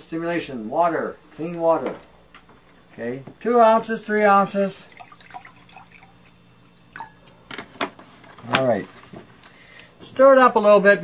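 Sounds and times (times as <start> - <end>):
water pouring into a glass mug: 4.9 - 7.3.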